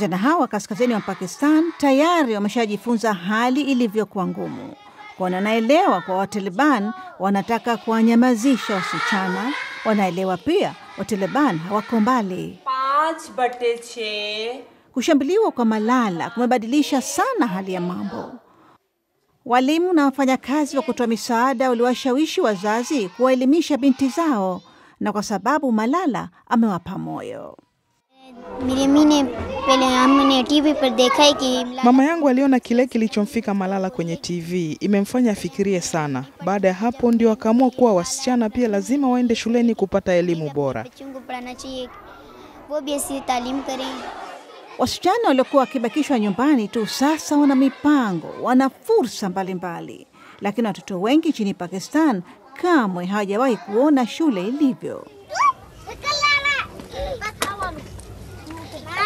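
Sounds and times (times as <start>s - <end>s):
girl speaking: 0.0s - 12.7s, 17.0s - 18.4s, 20.5s - 24.7s, 28.2s - 32.2s, 40.5s - 44.1s, 44.7s - 48.4s, 53.3s - 57.8s, 58.5s - 59.0s
children calling: 0.0s - 13.3s, 15.7s - 18.5s, 20.3s - 24.8s, 28.2s - 32.4s, 40.2s - 50.0s, 52.6s - 59.0s.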